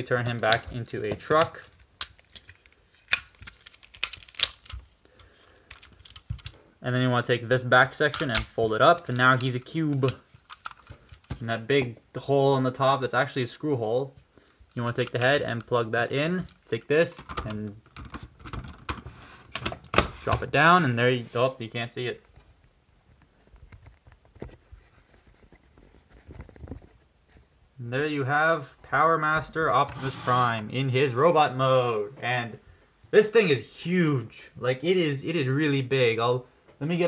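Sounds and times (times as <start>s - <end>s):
plastic toy parts clicking: 0.1s - 6.6s, 8.1s - 11.4s.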